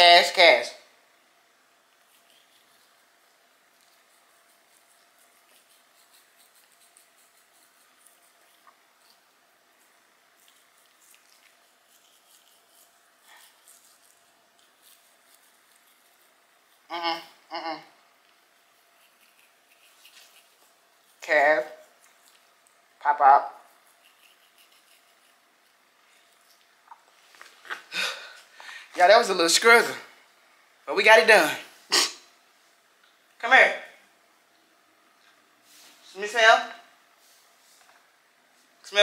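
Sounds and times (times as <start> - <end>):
toothbrush scratching teeth: 1.9 - 17.5, 18.2 - 22.8, 23.4 - 26.6.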